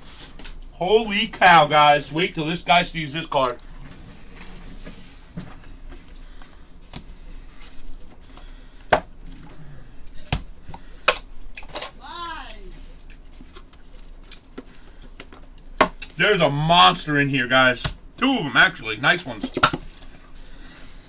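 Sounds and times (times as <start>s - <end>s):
person exclaiming: 11.9s - 12.8s.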